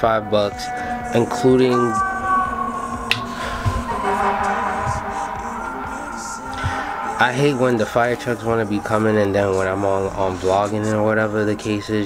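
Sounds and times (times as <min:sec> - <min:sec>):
fire truck siren: 0:00.2 - 0:11.4.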